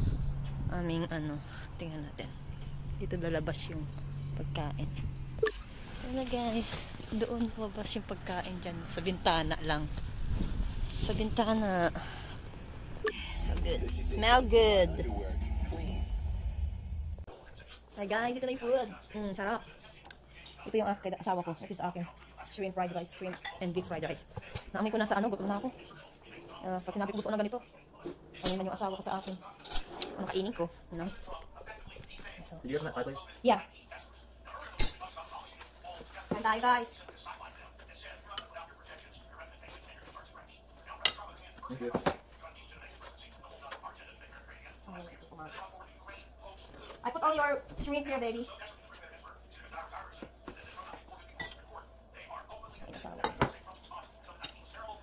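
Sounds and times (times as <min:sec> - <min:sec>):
dishes and cutlery clinking: 0:23.3 - 0:23.9, 0:51.2 - 0:51.8.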